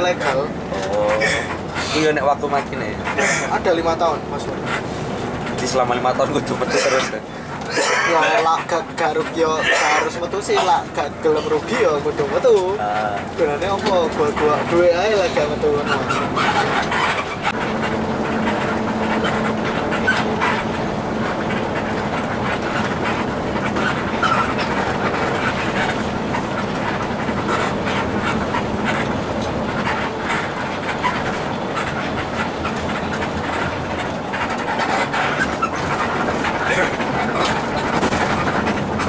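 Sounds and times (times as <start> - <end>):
bus engine and road noise: 0.0 - 39.0
interior rattles and clicks: 0.0 - 39.0.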